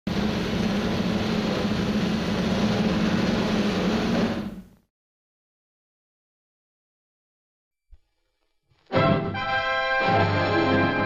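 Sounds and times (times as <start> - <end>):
aircraft engine drone: 0.1 - 4.8.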